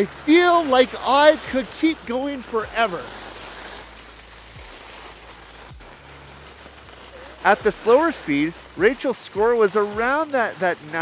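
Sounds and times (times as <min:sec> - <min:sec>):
skis sliding on snow: 0:00.0 - 0:11.0.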